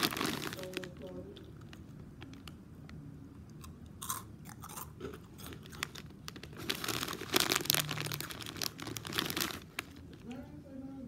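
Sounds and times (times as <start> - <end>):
person crunching crisp food: 3.6 - 10.2.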